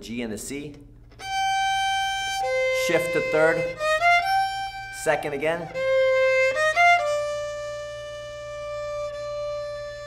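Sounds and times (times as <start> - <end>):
violin long bowed note: 1.2 - 10.0.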